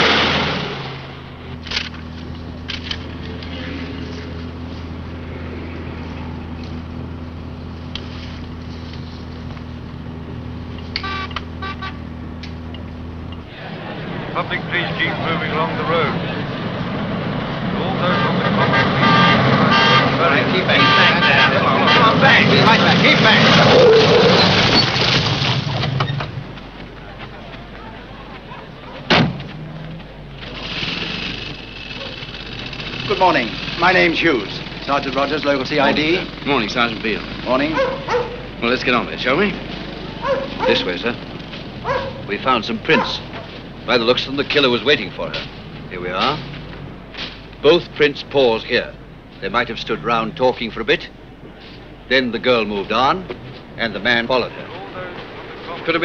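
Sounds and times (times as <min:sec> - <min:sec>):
crowd talking: 0:01.2 - 0:06.9, 0:12.5 - 0:24.4, 0:25.6 - 0:56.0.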